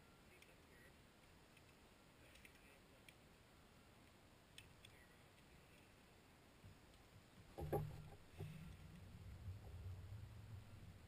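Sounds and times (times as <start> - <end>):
faint clicks: 0.3 - 3.2, 4.0 - 6.0
low rumble: 7.9 - 11.0.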